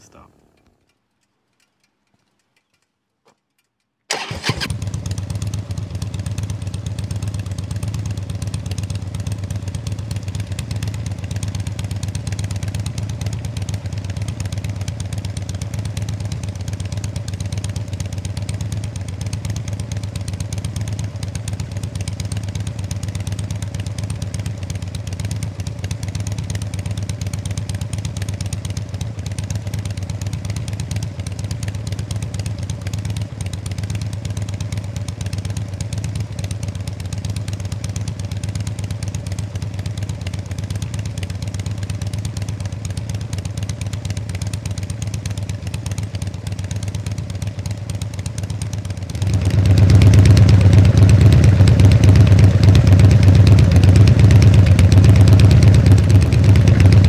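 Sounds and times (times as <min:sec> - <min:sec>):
motorcycle engine starting and idling: 0:00.1 - 0:57.0.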